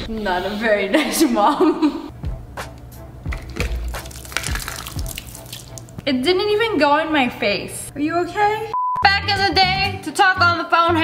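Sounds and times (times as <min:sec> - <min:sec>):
water squirting and splashing: 0:03.3 - 0:06.0.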